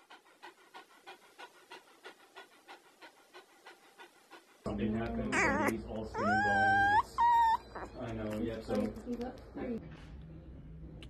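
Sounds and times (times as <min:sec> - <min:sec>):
puppy panting: 0:00.0 - 0:09.2.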